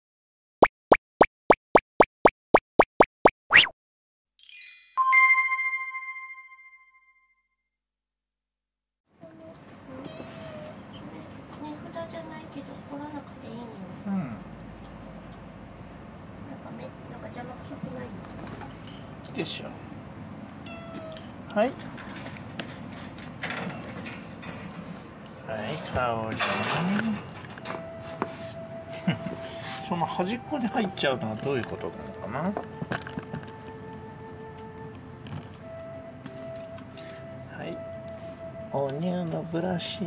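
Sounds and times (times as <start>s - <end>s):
short rising cartoon pops: 0.9s - 3.8s
cat meowing: 20.6s - 21.3s.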